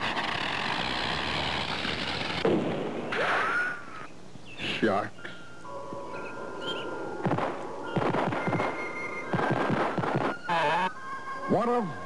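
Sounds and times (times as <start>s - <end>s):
rocket popping and crackling bursts: 0.0s - 3.4s, 7.2s - 10.7s
cartoon music with held tones: 7.8s - 12.0s.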